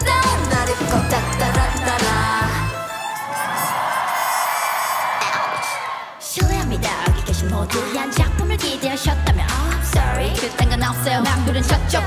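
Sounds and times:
pop dance track: 0.0s - 12.0s.

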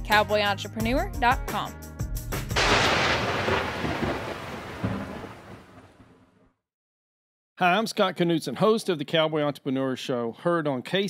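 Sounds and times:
thunder rumbling crash: 2.5s - 6.4s
short thud: 4.8s - 5.6s.

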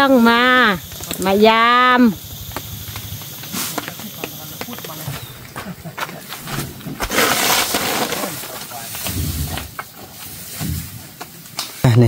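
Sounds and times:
thatch rustling: 6.3s - 11.0s.

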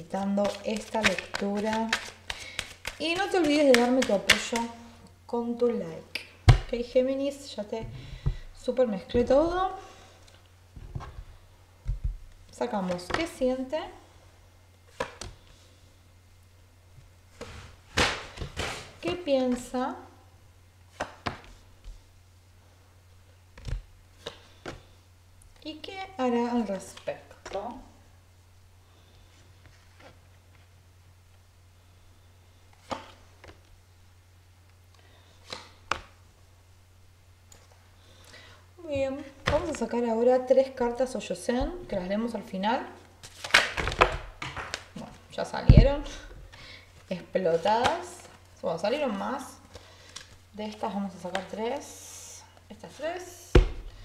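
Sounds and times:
low steady hum: 0.0s - 54.0s
soft card sounds: 0.2s - 4.8s
cards slapping: 0.4s - 4.7s, 14.9s - 15.5s, 17.9s - 19.6s, 20.9s - 21.5s, 23.6s - 24.8s, 32.7s - 33.6s, 35.4s - 36.2s, 43.2s - 45.0s
card rustling and slapping down: 14.9s - 15.4s, 17.4s - 19.6s, 43.2s - 45.1s.

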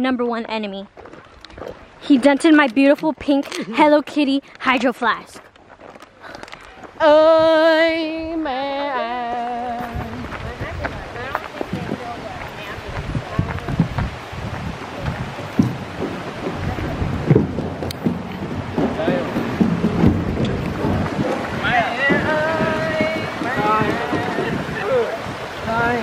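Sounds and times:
wind buffeting microphone: 0.4s - 26.0s
footstep knocks: 9.2s - 25.4s
creek rushing: 9.3s - 26.0s.

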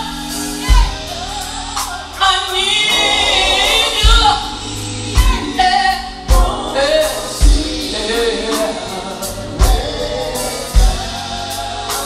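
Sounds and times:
band playing: 0.0s - 12.0s
bass and drum hits: 0.0s - 12.0s
women singing in harmony: 0.0s - 12.0s.

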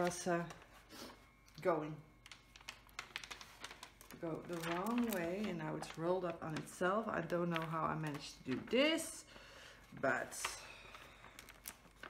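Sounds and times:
plastic sheet clicking and crackling: 2.1s - 9.1s, 10.0s - 12.0s.

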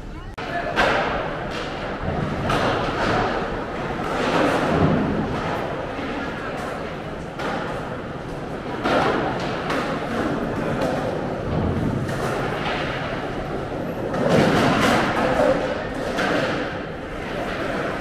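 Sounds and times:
skateboards clacking on concrete: 0.5s - 18.0s.

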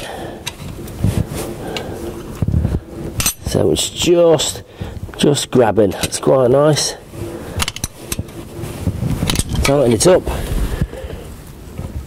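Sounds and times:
metallic clicks and scrapes of tools: 3.2s - 3.6s, 7.6s - 8.4s, 9.2s - 10.0s.

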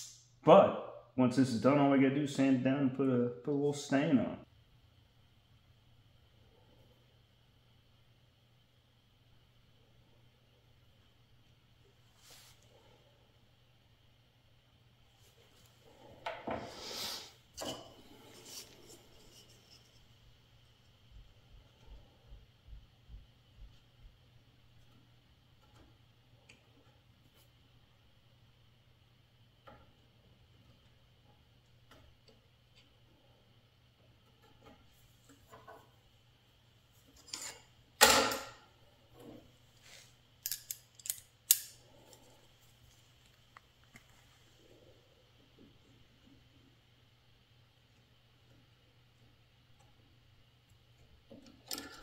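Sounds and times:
brushing and clattering: 15.1s - 22.2s
wood rubbing and scraping: 18.0s - 20.4s
metallic clicks and snaps: 40.4s - 41.8s.

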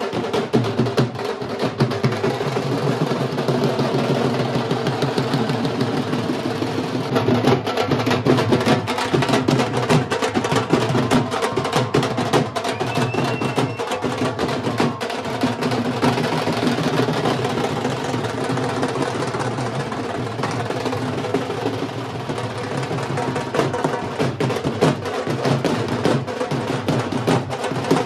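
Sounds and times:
barrel and side drums playing: 0.0s - 28.0s.

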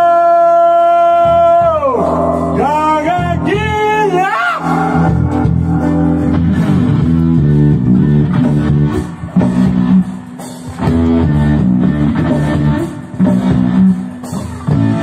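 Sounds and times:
rock guitar bass and drums: 0.0s - 15.0s.

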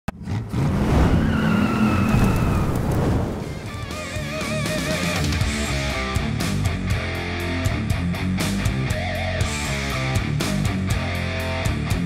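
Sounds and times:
tyre squeal: 1.0s - 2.8s
electric guitar music: 3.4s - 12.0s.

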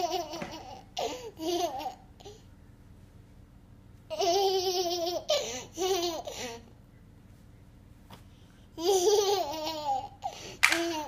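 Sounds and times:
toddler laughing: 0.0s - 2.3s, 4.1s - 6.6s, 8.8s - 11.0s.

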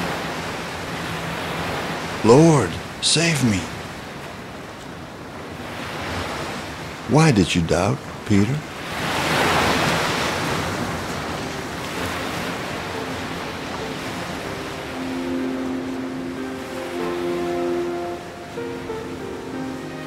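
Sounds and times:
stormy sea waves: 0.0s - 20.0s
soft music with held notes: 10.9s - 20.0s.

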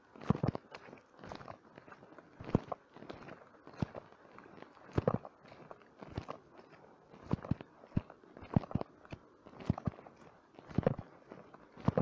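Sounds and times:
faint rustle: 0.0s - 12.0s.

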